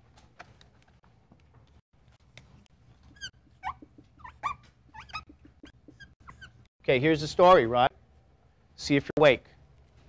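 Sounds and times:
marker squeaking on whiteboard: 0:02.9 - 0:06.7.

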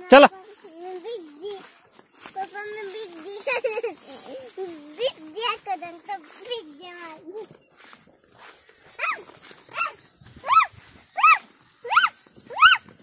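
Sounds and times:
animal calling: 0:08.9 - 0:12.9.

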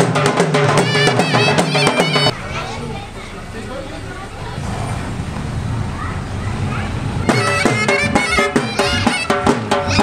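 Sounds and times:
car engine running: 0:00.6 - 0:08.0.

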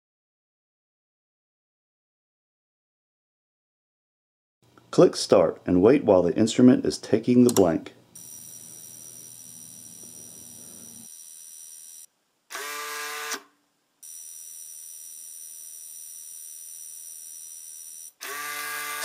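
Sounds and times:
faint high electronic whine: 0:08.1 - 0:12.5.

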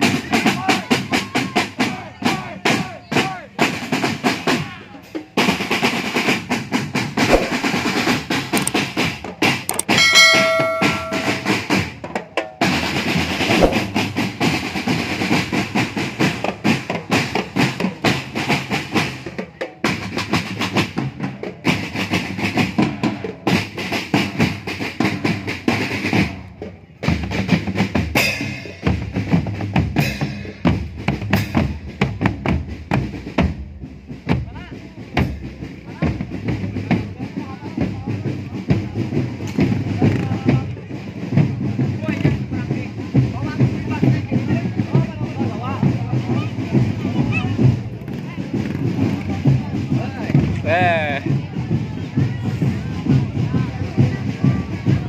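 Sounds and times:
snare drums: 0:00.0 - 0:12.0, 0:12.6 - 0:55.0
bass drums: 0:06.9 - 0:12.0, 0:13.0 - 0:19.2
people talking: 0:43.4 - 0:55.0.

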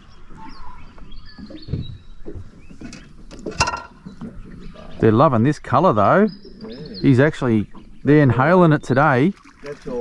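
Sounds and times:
faint bird chirps: 0:00.0 - 0:03.2, 0:06.0 - 0:09.0.

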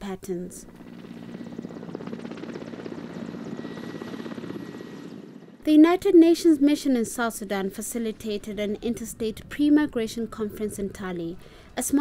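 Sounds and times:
helicopter rotor chopping: 0:00.6 - 0:11.3.

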